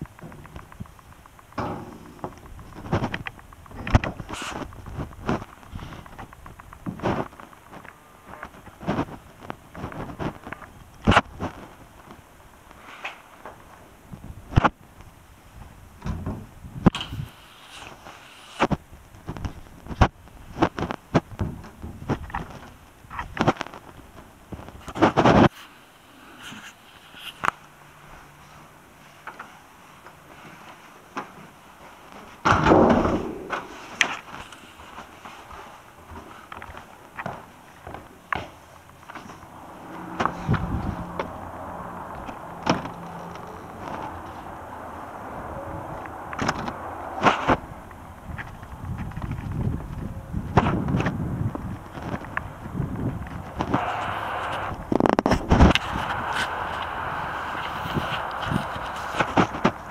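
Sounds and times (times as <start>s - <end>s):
knocks and thuds: 32.5s - 34.0s.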